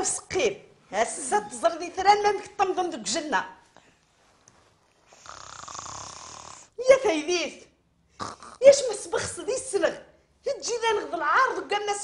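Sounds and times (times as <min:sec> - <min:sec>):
person snoring: 0:05.1 - 0:06.7, 0:08.2 - 0:08.6.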